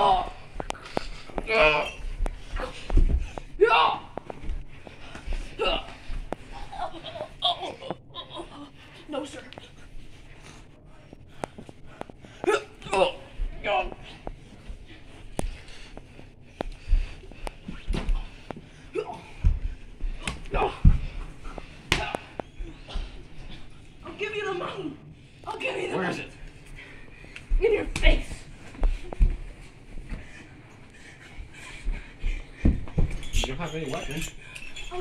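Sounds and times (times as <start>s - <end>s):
yelps and grunts: 0.0s - 4.3s, 5.0s - 9.8s, 12.2s - 14.3s, 18.0s - 26.3s
bodies thumping and shuffling: 0.0s - 24.9s, 25.5s - 35.0s.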